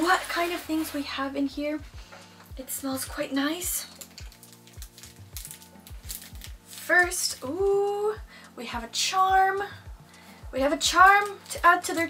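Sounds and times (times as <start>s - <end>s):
cloth packet rustling: 0.0s - 1.4s, 2.2s - 8.2s, 10.8s - 12.0s
music with steady beat: 0.0s - 12.0s.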